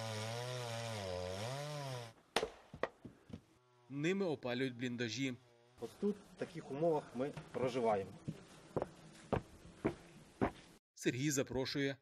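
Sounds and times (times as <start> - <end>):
chainsaw cutting log: 0.0 - 2.6.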